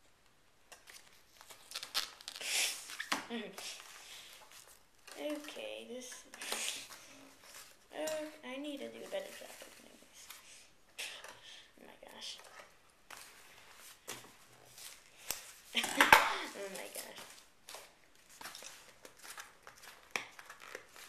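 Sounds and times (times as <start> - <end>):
plastic packaging crinkling: 0.7 - 10.5, 12.2 - 21.0
packaging tearing: 0.8 - 3.1, 16.5 - 21.0.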